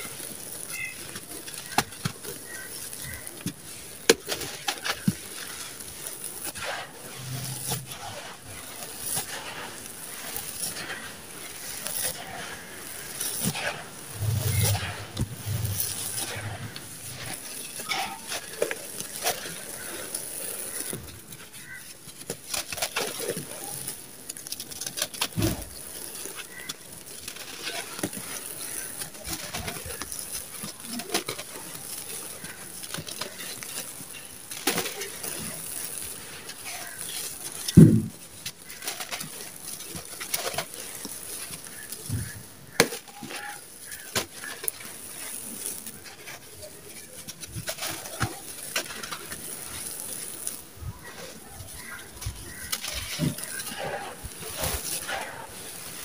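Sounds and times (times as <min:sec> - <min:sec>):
grains pattering through fingers: 0:00.0 - 0:56.0
hands crunching dry sand mix: 0:00.0 - 0:56.0.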